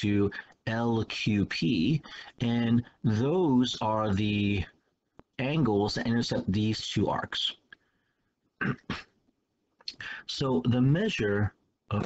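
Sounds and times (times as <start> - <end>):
man coughing: 8.6 - 9.2.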